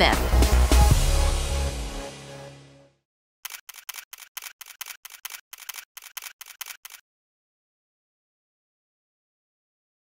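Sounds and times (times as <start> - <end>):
camera shutters clicking: 3.4 - 7.0.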